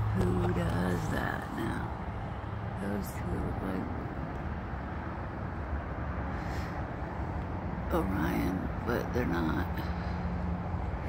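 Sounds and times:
vehicle engine rumble: 0.0s - 11.0s.

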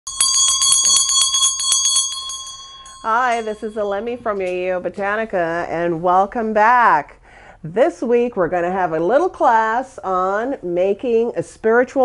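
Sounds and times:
hand bell ringing: 0.1s - 4.6s.

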